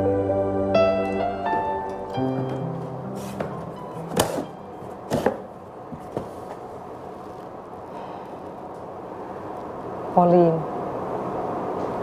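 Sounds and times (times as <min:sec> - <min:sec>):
objects knocking against cardboard box: 0:03.2 - 0:06.6.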